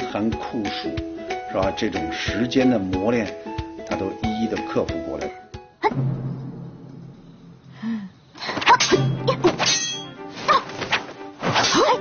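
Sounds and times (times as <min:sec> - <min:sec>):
metal blades clashing: 0:08.6 - 0:10.2.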